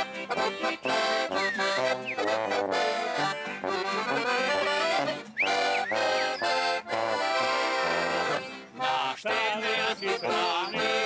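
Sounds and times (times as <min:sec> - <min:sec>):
accordion playing folk tune: 0:00.0 - 0:11.0.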